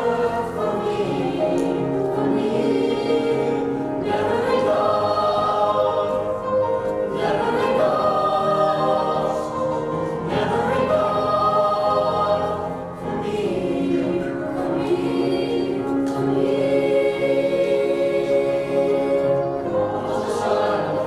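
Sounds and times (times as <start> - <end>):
mixed choir singing chords: 0.0 - 21.0.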